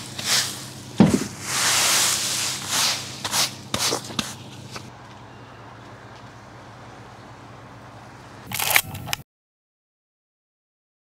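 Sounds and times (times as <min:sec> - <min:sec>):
leaves scraped along path: 0:00.0 - 0:04.9.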